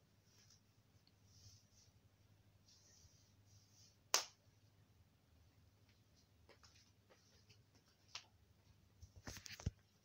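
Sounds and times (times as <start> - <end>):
faint soft hissing: 0.1 - 4.0.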